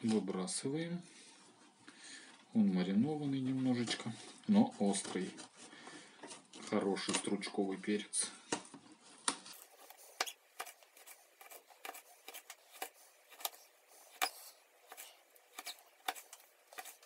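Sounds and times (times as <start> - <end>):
knife chopping on plastic board: 9.8 - 17.0.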